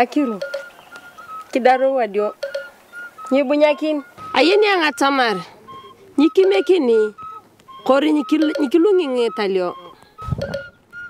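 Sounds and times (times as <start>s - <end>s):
woman speaking: 0.0s - 0.4s, 1.5s - 2.4s, 3.3s - 5.6s, 6.2s - 7.2s, 7.8s - 10.0s
short whistled tones: 0.6s - 1.6s, 2.6s - 4.6s, 5.3s - 8.0s.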